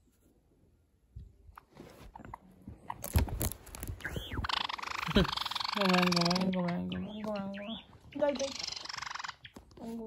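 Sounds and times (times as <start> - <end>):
bird rattling call: 3.9 - 9.6.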